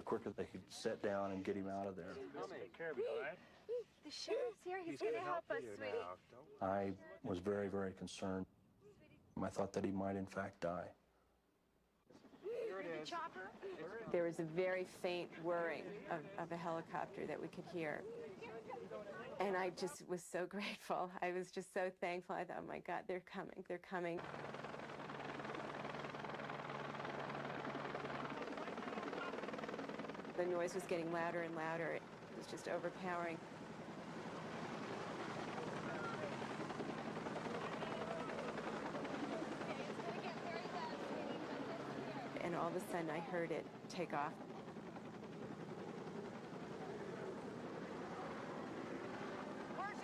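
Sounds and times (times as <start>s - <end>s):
helicopter rotor chop: 24.2s - 50.0s.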